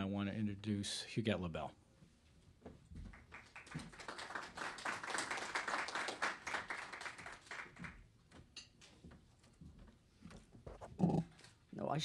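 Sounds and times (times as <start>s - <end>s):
audience applauding: 3.1s - 8.1s.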